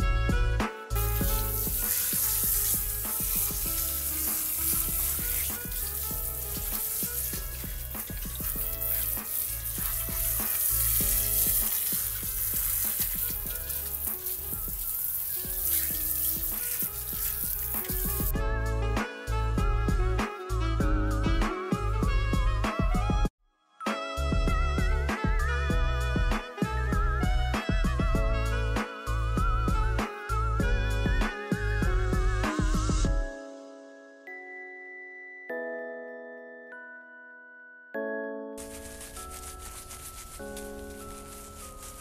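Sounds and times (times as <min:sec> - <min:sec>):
shower head spraying water: 0:01.0 - 0:18.3, 0:38.6 - 0:42.0.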